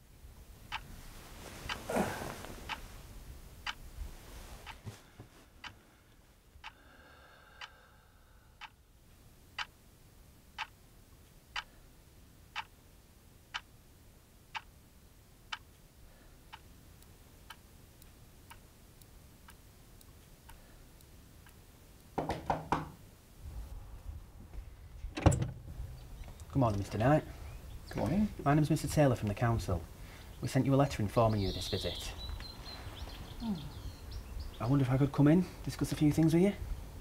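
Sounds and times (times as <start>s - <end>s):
clock ticking: 8.6s - 8.8s, 9.6s - 9.8s, 10.5s - 10.8s, 11.5s - 11.7s, 12.5s - 12.7s, 13.5s - 13.7s, 14.5s - 14.7s, 15.5s - 15.9s, 16.5s - 22.1s.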